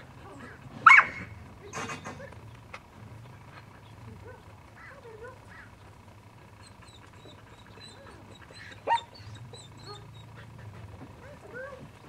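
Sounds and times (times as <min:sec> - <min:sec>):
dog barking: 0:00.8 - 0:01.3, 0:07.2 - 0:10.2.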